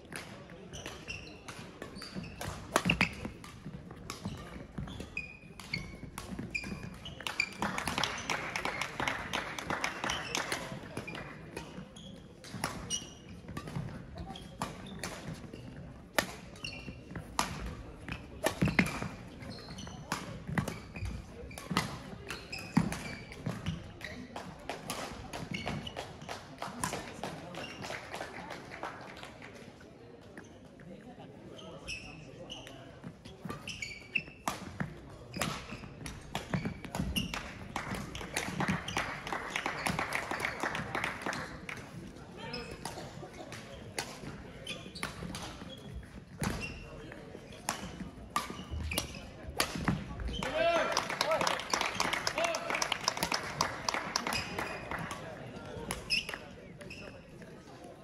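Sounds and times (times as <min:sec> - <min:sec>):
racket striking shuttlecock: 0:00.1 - 0:08.7, 0:17.2 - 0:19.1, 0:47.6 - 0:50.0
shoe squeaks: 0:00.7 - 0:03.3, 0:04.2 - 0:08.3, 0:11.8 - 0:13.4, 0:14.2 - 0:15.8, 0:16.5 - 0:17.2, 0:18.1 - 0:21.7, 0:22.3 - 0:23.4, 0:31.5 - 0:34.4, 0:44.5 - 0:49.4, 0:53.9 - 0:55.0, 0:55.9 - 0:57.4.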